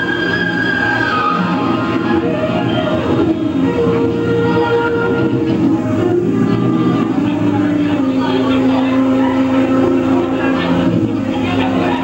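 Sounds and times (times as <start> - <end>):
live jazz band playing: 0.0 - 12.0.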